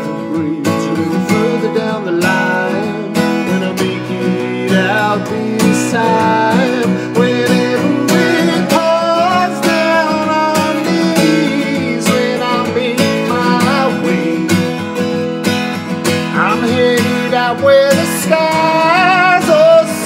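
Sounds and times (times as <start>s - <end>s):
acoustic guitar strumming: 0.0s - 20.0s
man singing: 0.0s - 20.0s.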